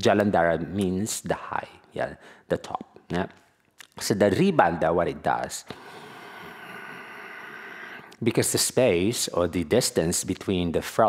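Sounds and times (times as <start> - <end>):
person breathing in with hiss: 5.7 - 8.2.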